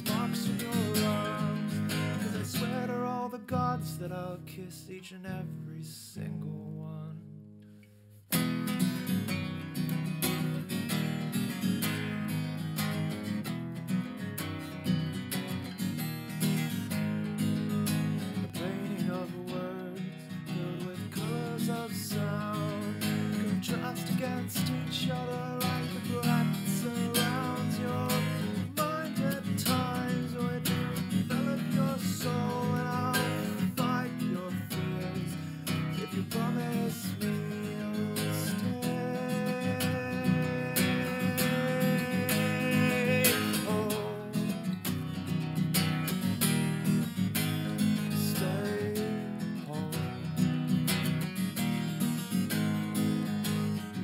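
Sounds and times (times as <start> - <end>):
man singing: 0.0 - 7.4, 18.3 - 44.9, 47.6 - 50.4
acoustic guitar strumming: 0.0 - 54.0.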